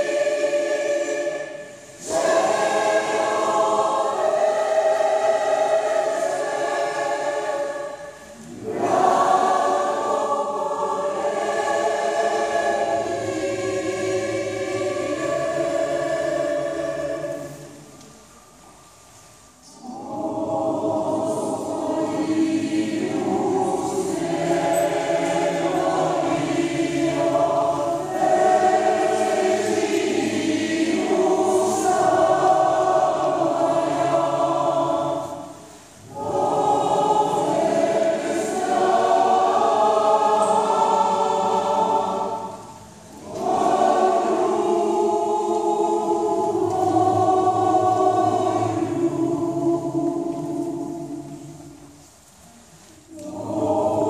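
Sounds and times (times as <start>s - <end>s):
mixed choir singing: 0.0s - 18.3s, 19.6s - 52.1s, 53.0s - 54.0s.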